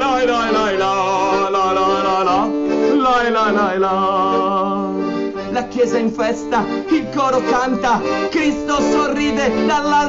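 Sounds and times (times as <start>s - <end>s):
accordion chords: 0.0s - 10.0s.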